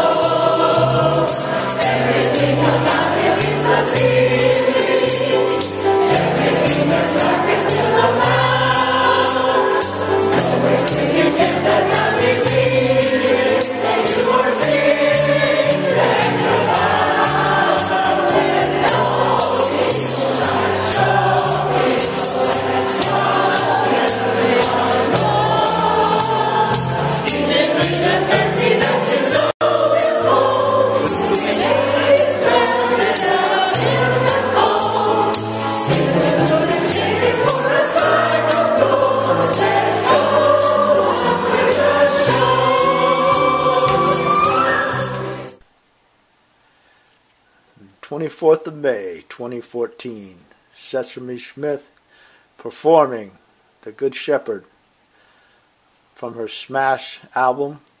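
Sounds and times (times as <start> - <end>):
group singing gospel song: 0.0 - 45.6
rhythmic tambourine beat: 0.0 - 45.6.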